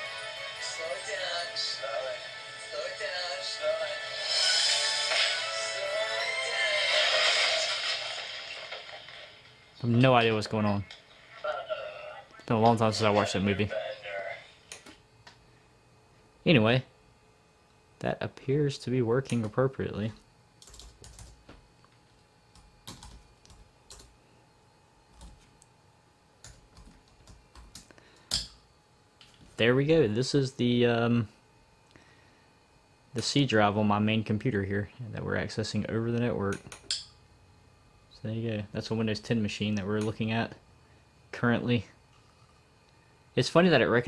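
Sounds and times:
movie soundtrack through laptop speakers: 0.0s - 15.4s
laptop keyboard typing: 20.6s - 21.4s, 22.6s - 24.1s, 26.4s - 28.4s.

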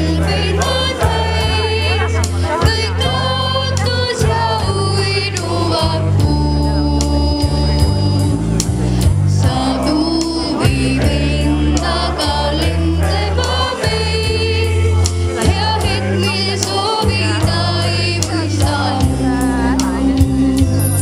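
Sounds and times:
choir singing through a pa: 0.0s - 6.8s, 9.3s - 20.1s
amplified accompaniment with heavy bass: 0.0s - 21.0s.

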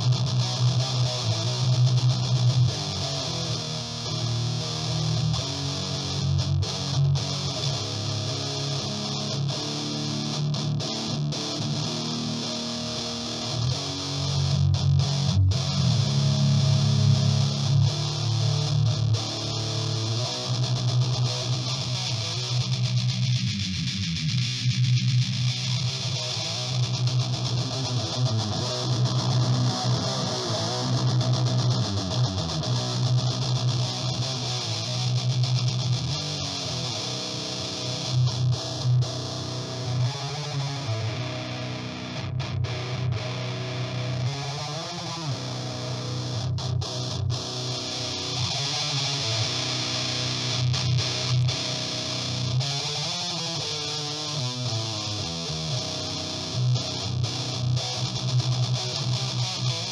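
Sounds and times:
distorted electric guitar riffing: 0.0s - 59.9s.

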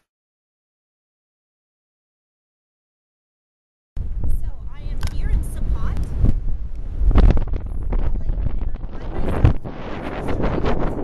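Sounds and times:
wind buffeting microphone: 4.0s - 11.0s.

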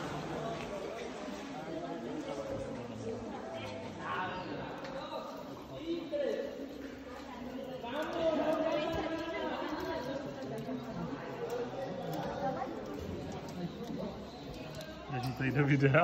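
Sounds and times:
indistinct chatter of people: 0.0s - 16.0s.

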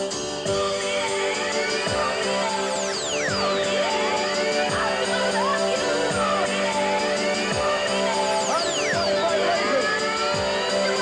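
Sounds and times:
happy hardcore rave music: 0.0s - 11.0s.

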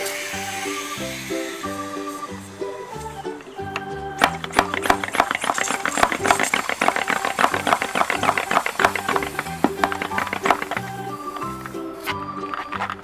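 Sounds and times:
background music: 0.0s - 13.0s
water balloon clicks and squeaks: 2.8s - 13.0s.

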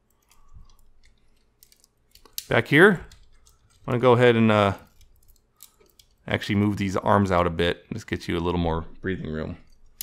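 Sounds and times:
small plastic clicks: 0.0s - 3.9s
plastic parts rubbing: 0.0s - 6.2s.

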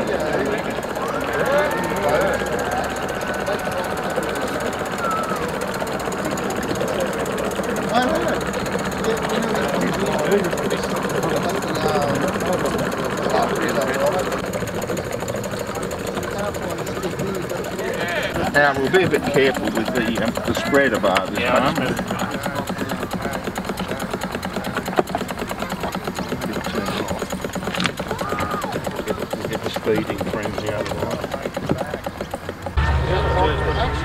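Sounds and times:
people talking: 0.0s - 34.0s
small steam engine beating: 0.0s - 34.0s.

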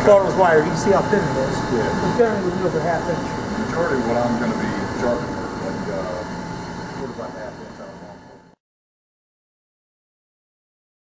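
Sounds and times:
surface grinder humming: 0.0s - 8.6s.

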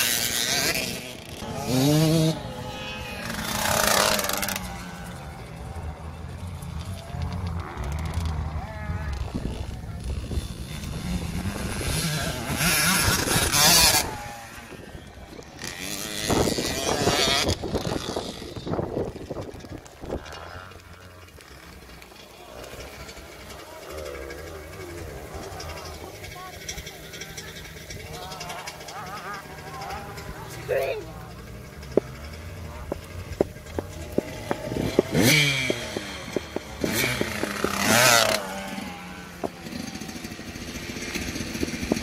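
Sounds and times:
distant motocross bike running: 0.0s - 42.0s
motocross bike revving: 0.0s - 42.0s.

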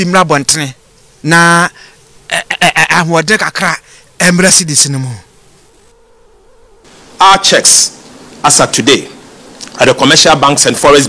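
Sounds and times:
person speaking: 0.0s - 5.3s, 7.2s - 11.0s.

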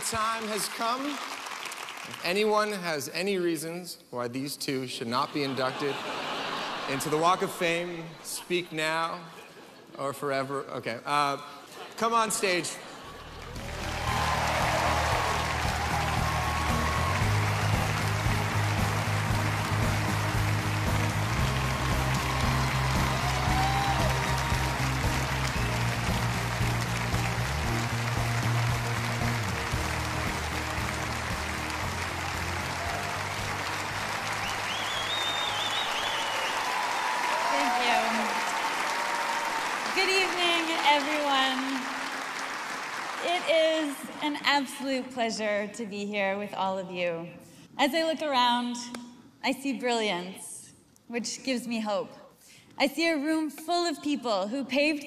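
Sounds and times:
audience applauding and cheering: 0.0s - 2.8s, 12.4s - 44.3s
walk-on music with bass line: 13.6s - 34.7s.

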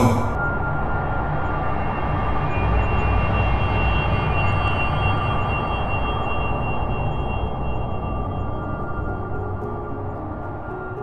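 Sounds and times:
faint sustained high tones: 0.3s - 11.0s.

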